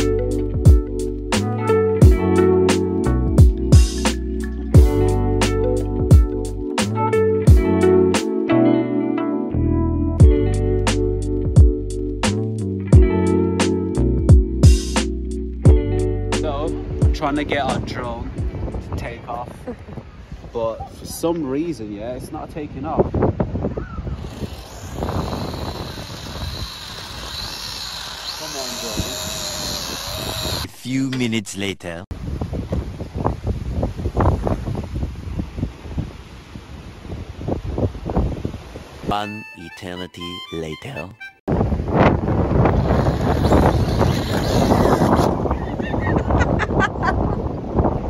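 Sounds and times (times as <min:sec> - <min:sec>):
toy drone motors whining: 0:24.2 - 0:30.8, 0:42.8 - 0:45.4.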